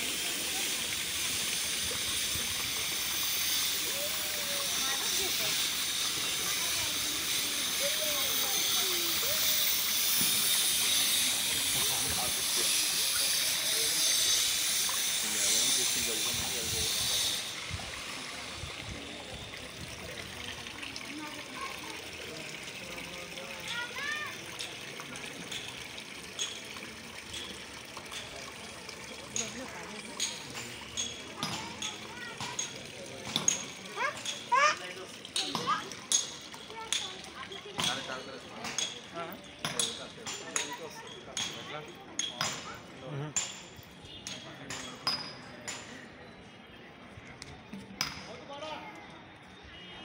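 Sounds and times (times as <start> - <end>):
water trickling into stone channel: 0.0 - 46.2.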